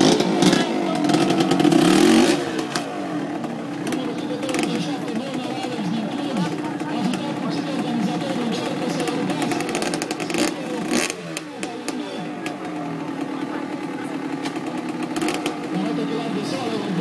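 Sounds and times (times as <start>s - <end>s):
motorcycle engine revving: 0.0s - 17.0s
onlookers' voices: 0.0s - 17.0s.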